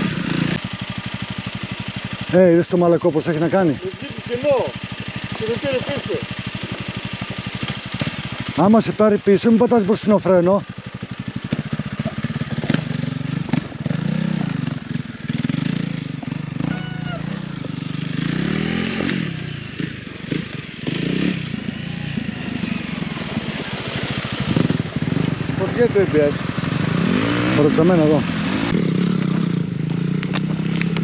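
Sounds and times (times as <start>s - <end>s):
dirt bike engine idling: 0.0s - 31.0s
dirt bike engine revving: 0.0s - 31.0s.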